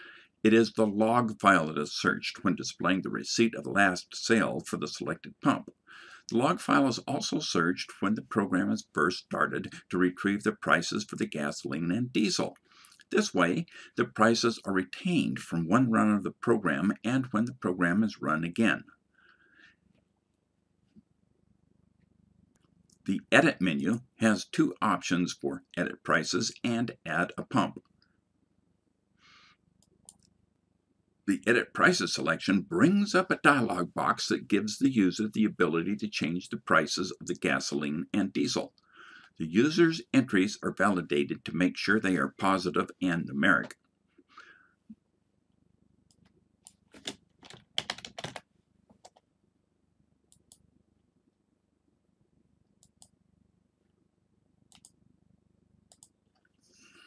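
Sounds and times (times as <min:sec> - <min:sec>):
computer keyboard typing: 0:47.0 - 0:48.4.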